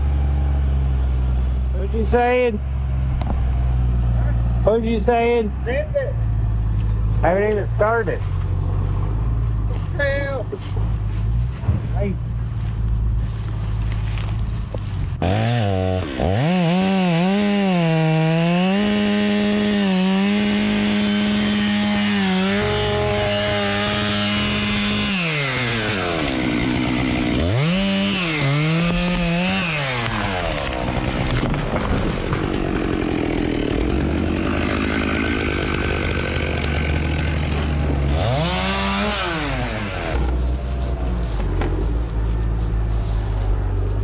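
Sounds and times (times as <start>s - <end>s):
two-stroke chainsaw revving: 15.2s - 40.4s.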